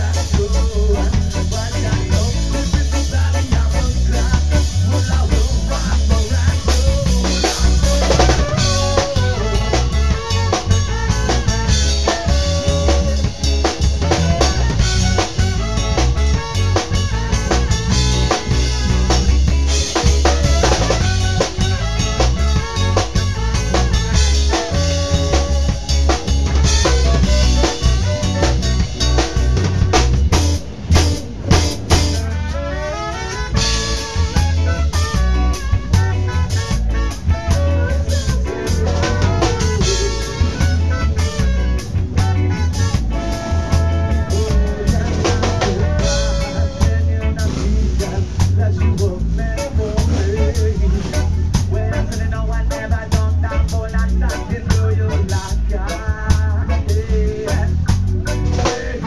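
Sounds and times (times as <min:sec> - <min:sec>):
trumpet melody: 0:00.0 - 0:48.2
ska band playing live: 0:00.0 - 0:59.0.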